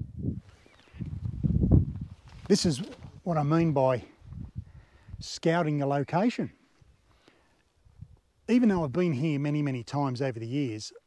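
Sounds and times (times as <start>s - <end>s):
low rumbling on lapel microphone: 0.0s - 3.4s, 4.0s - 5.3s, 7.8s - 8.2s.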